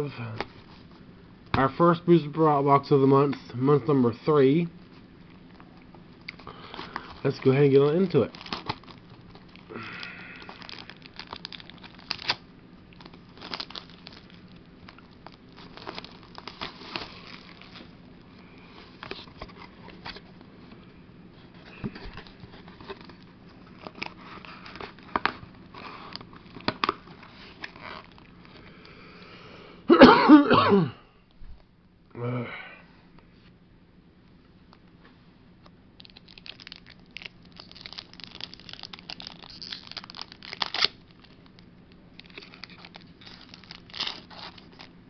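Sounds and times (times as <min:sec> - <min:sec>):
shrink wrap crinkling and tearing: 0:05.5 - 0:20.4, 0:21.6 - 0:28.6, 0:36.0 - 0:45.0
box opening clicks and rustles: 0:08.2 - 0:09.6, 0:21.6 - 0:28.3
person coughing: 0:29.9 - 0:31.1.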